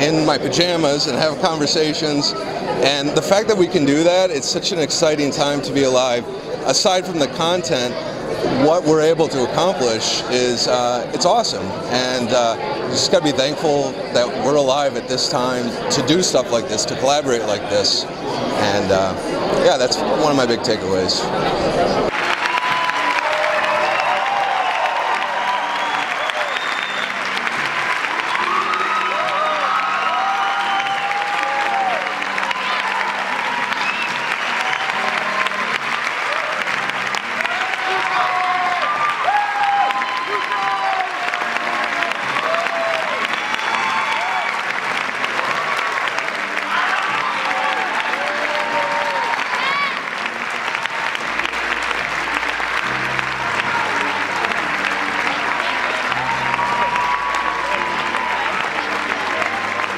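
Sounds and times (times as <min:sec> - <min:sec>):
audience applauding: 0:22.1 - 0:59.9.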